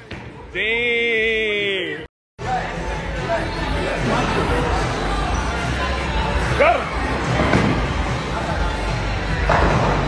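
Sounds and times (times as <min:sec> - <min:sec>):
background music: 0:01.2 - 0:10.0.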